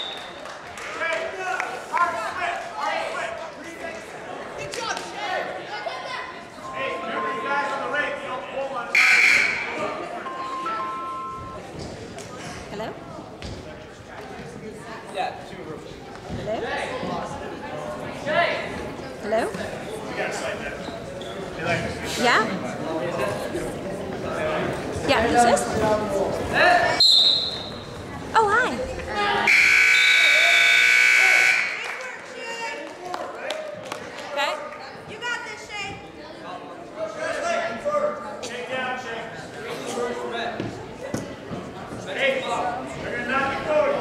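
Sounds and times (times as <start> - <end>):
murmur of a gym: 0.0 - 44.0
phone ringtone beeping: 10.2 - 11.6
timer buzzer: 29.5 - 31.8.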